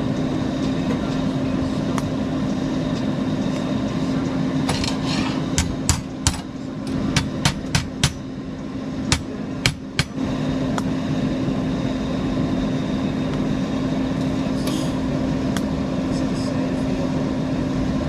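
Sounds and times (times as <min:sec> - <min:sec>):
steady shop hum: 0:00.0 - 0:18.0
hammer tapping on steel box: 0:07.2 - 0:08.2.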